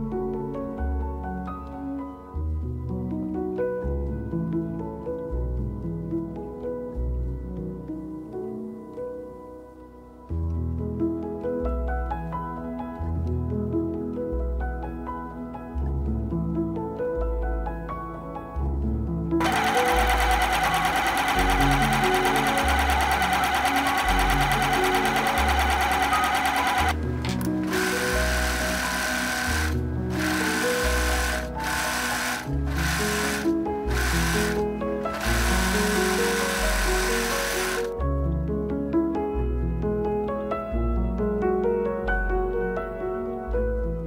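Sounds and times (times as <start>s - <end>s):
soft background music: 0.0s - 44.0s
overlocker stitching: 19.4s - 37.9s
sewing machine stitching: 19.4s - 37.9s.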